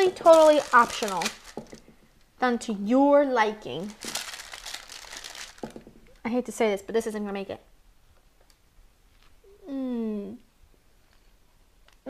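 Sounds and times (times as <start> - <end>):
paper crinkling and rustling: 0.0 - 1.8, 3.8 - 5.9.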